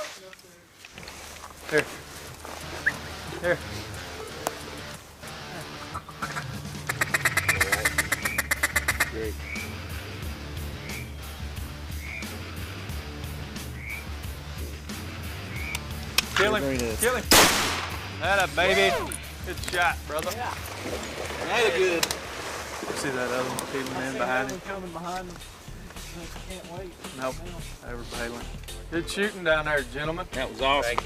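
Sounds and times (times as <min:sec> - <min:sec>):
background music: 0:01.1 - 0:31.0
duck call quacks: 0:05.8 - 0:10.0.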